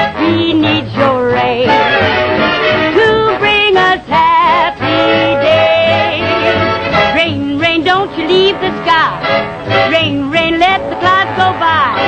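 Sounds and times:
woman singing: 0.0s - 2.2s, 2.8s - 12.0s
orchestral accompaniment: 0.0s - 12.0s.

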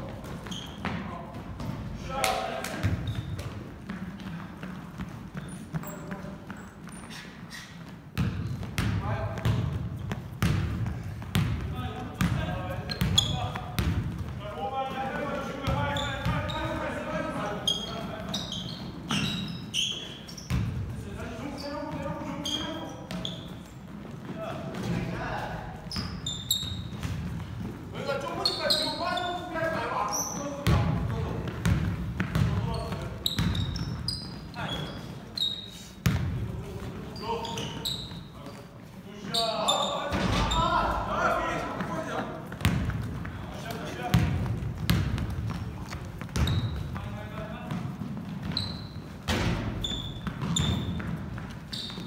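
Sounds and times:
sneaker squeaks: 0.0s - 14.4s, 15.2s - 52.0s
players' footsteps: 0.0s - 35.4s, 36.2s - 39.0s, 40.1s - 52.0s
basketball bouncing on hardwood: 7.8s - 14.4s, 30.6s - 33.8s, 42.5s - 43.4s, 44.1s - 48.6s, 49.3s - 52.0s.

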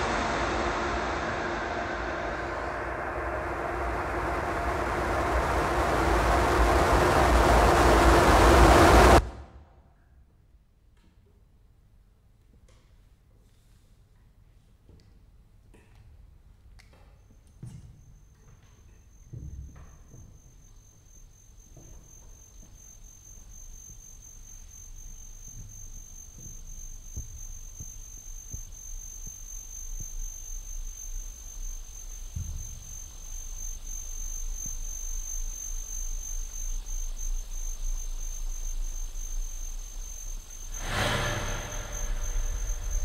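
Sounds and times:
loud rush of noise: 0.0s - 9.4s, 40.6s - 43.0s
low electronic rumble: 0.0s - 9.5s, 22.4s - 43.0s
thin high electronic tone: 1.6s - 9.2s, 18.0s - 43.0s.

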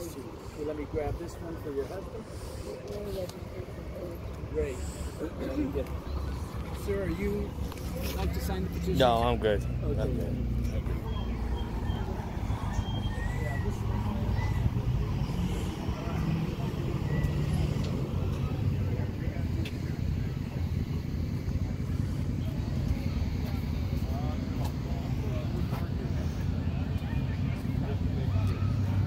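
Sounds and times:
low rumble of road traffic: 0.0s - 29.0s.

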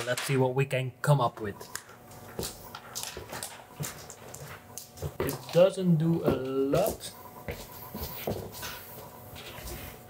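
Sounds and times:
footsteps on hard floor: 2.0s - 10.0s.

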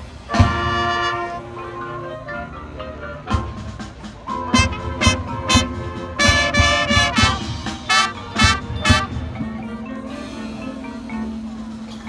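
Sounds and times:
marching band brass playing: 0.0s - 12.0s.

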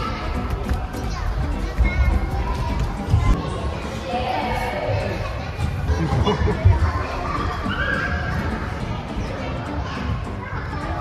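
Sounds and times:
din of indoor play area: 0.0s - 11.0s.

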